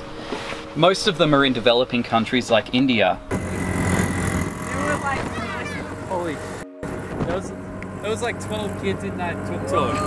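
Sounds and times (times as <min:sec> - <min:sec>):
auto-rickshaw engine droning: 0:03.3 - 0:10.0
voices talking: 0:04.7 - 0:06.6, 0:07.3 - 0:10.0.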